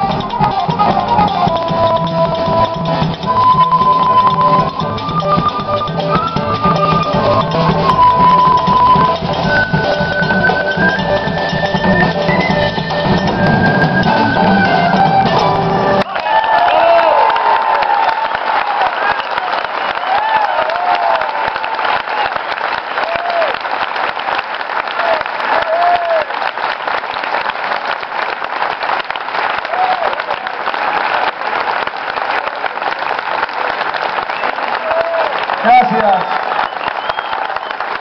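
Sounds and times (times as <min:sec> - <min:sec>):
audience applauding: 0:00.0 - 0:38.0
cheering shouts: 0:16.0 - 0:23.7, 0:24.8 - 0:26.4, 0:29.6 - 0:31.2, 0:34.6 - 0:38.0.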